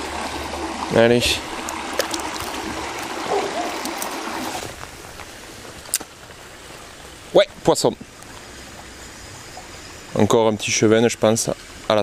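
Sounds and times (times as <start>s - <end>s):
water sloshing around hands: 0.0s - 5.3s
stream running over stones: 0.0s - 12.0s.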